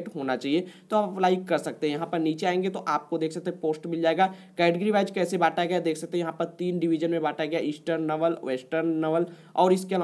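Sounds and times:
person narrating: 0.0s - 10.0s.

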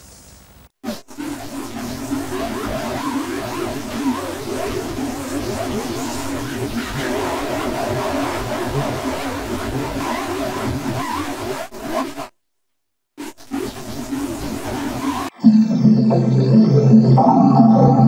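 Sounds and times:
distorted harsh noise with warbling tones: 0.8s - 12.3s, 13.2s - 18.0s.

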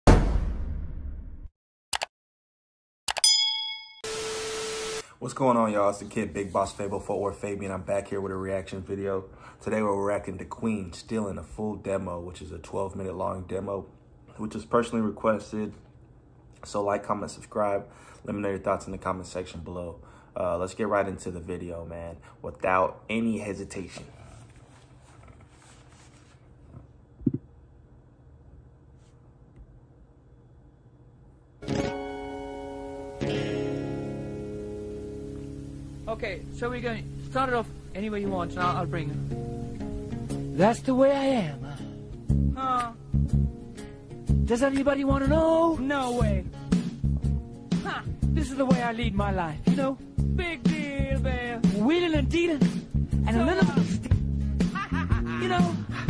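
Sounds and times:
metallic ding: 3.2s - 4.2s
low room hum: 5.1s - 31.6s
fabric and headphones rustling: 23.8s - 27.0s.

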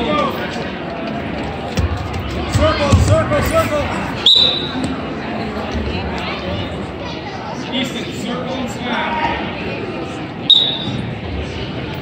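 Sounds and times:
referee's whistle blown: 4.2s - 4.8s, 10.5s - 11.0s.

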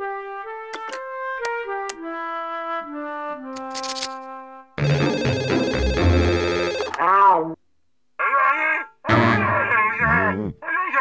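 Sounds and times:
cartoon cat yelling: 8.2s - 11.0s
thin voice through phone: 8.2s - 11.0s.

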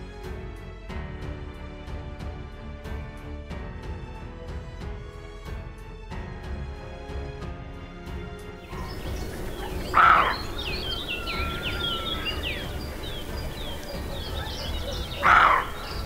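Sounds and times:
birds chirping: 8.6s - 16.0s
deer alarm bark: 9.0s - 12.4s, 13.9s - 16.0s.

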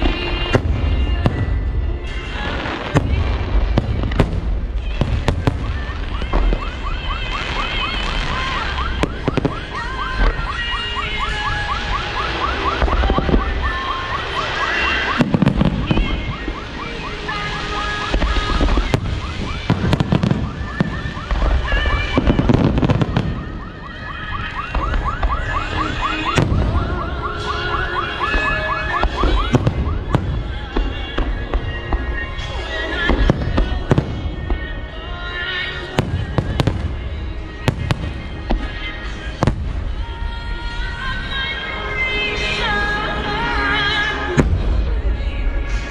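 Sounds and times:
firework crackling: 0.0s - 45.9s
music playing: 0.0s - 45.9s.

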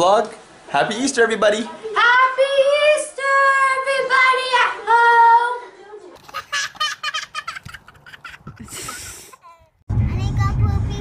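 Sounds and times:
child singing: 1.9s - 5.7s, 10.1s - 11.0s.

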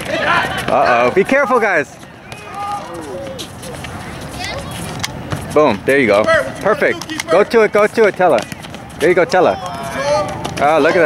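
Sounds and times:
distant voices calling out: 0.0s - 11.0s.

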